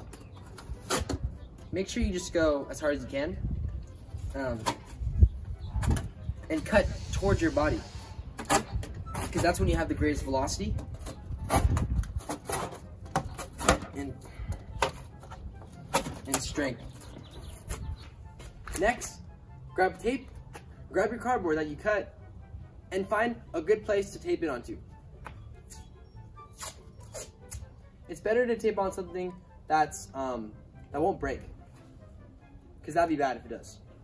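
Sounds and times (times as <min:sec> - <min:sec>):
faint background music: 0:00.0 - 0:34.0
knife cutting cardboard: 0:10.8 - 0:14.0
tape ripping off a roll: 0:26.5 - 0:27.7.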